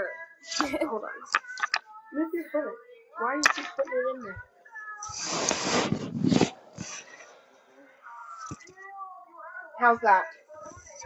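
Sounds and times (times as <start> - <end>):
faint background voices: 0.0 - 11.0
rustling handling noise on microphone: 5.1 - 7.2.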